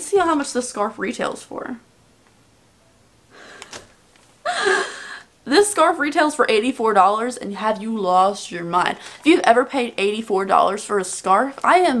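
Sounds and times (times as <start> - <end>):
woman gasping in shock: 4.4 - 5.3.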